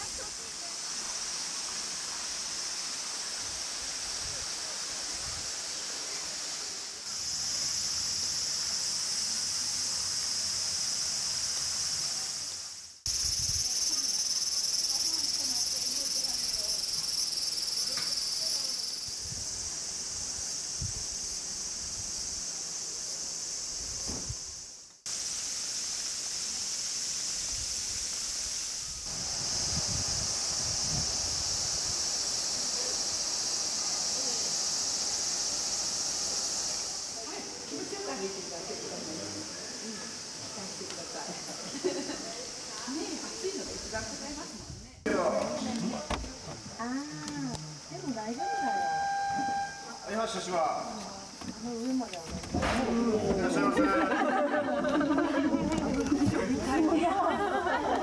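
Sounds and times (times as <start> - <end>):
cicadas chorus: 0.0 - 58.0.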